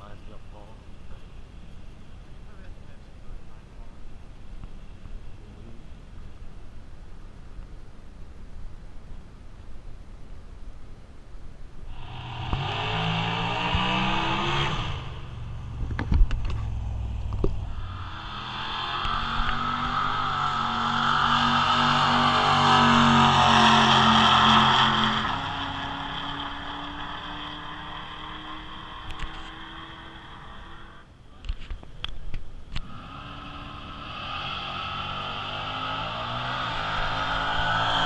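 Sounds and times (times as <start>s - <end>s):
drag racing car engine: 11.9s - 31.1s, 32.7s - 38.0s.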